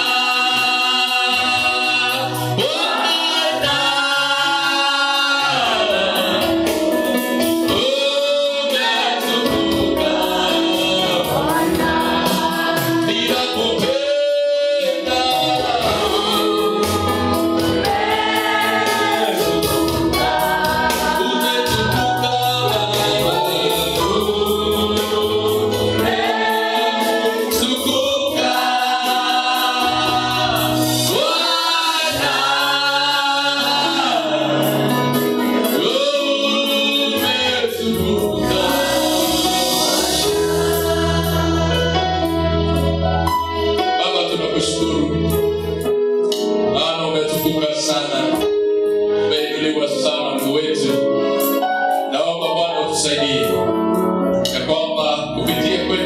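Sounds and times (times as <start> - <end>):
group singing gospel song: 0.0 - 45.3
instrumental accompaniment: 0.0 - 56.0.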